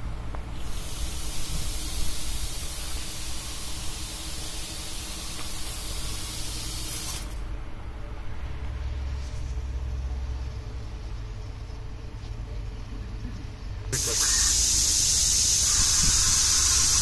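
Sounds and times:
low background rumble: 0:00.0 - 0:17.0
misting nozzles spraying hiss: 0:00.5 - 0:07.4, 0:13.9 - 0:17.0.

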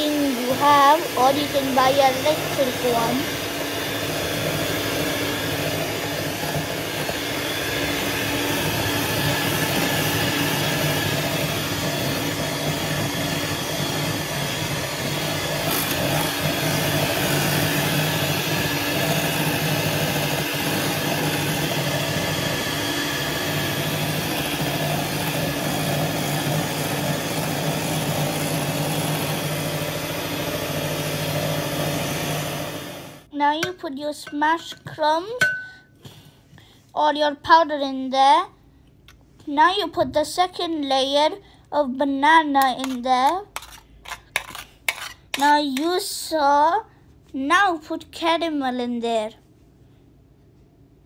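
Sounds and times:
electric hand mixer whipping cream: 0:00.0 - 0:33.3.

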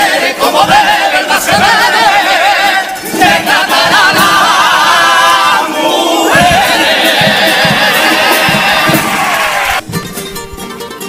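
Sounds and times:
men singing in chorus: 0:00.0 - 0:09.6
guitar strumming: 0:06.4 - 0:11.0.

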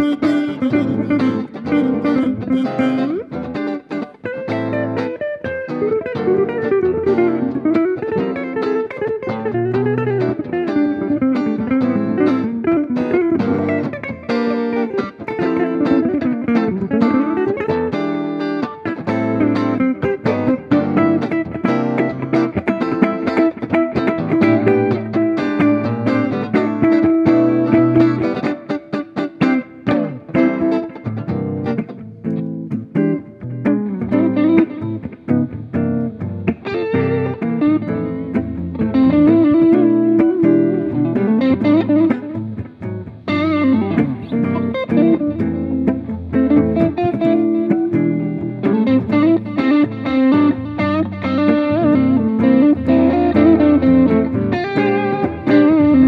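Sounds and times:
electric guitar: 0:00.0 - 0:56.0
jazz guitar: 0:00.0 - 0:56.0.

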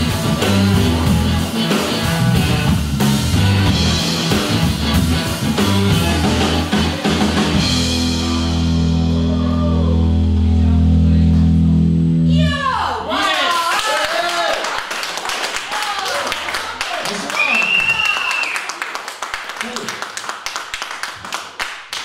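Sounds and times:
audience shouting: 0:12.7 - 0:14.8
audience clapping: 0:13.1 - 0:22.0.

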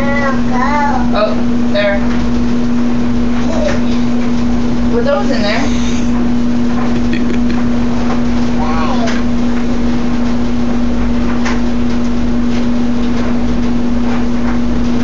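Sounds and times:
loud steady machine hum: 0:00.0 - 0:15.0.

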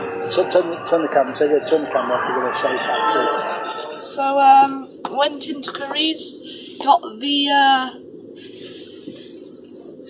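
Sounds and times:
car cabin hiss and hum: 0:04.7 - 0:10.0.

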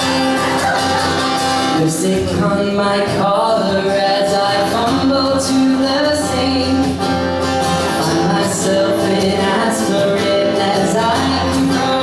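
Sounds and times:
acoustic guitar: 0:00.0 - 0:12.0
man singing into a microphone: 0:01.7 - 0:07.2, 0:07.8 - 0:12.0.

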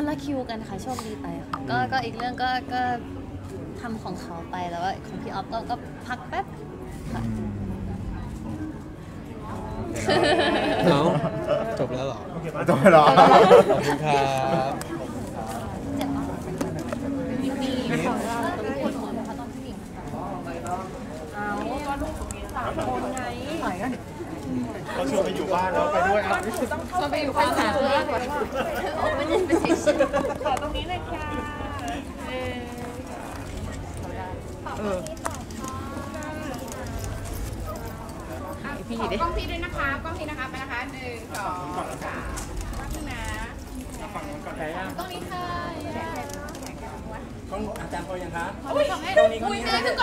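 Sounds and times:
crowd of voices talking: 0:00.0 - 0:50.0.

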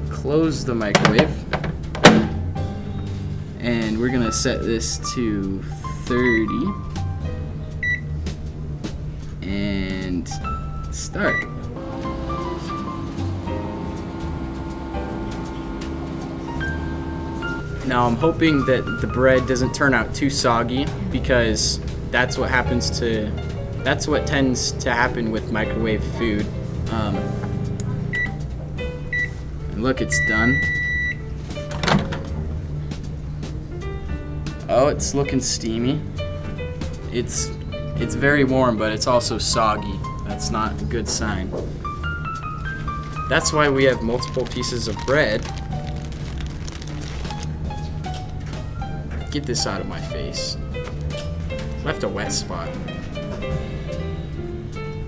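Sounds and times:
low background music: 0:00.0 - 0:55.0
microwave door popping open: 0:01.0 - 0:02.5, 0:31.7 - 0:32.4
microwave keypad beep: 0:06.2 - 0:06.5, 0:07.8 - 0:08.1, 0:11.3 - 0:11.5, 0:28.1 - 0:28.4, 0:29.1 - 0:29.3, 0:30.2 - 0:31.2.

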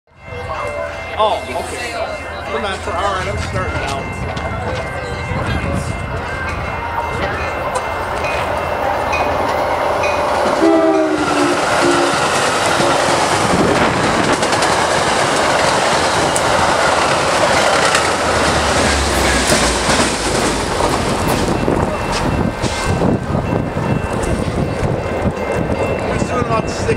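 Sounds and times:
rush of passing train cars: 0:00.1 - 0:26.9
train horn chord: 0:10.1 - 0:13.1
wheels clicking over rail joints: 0:11.3 - 0:23.0.

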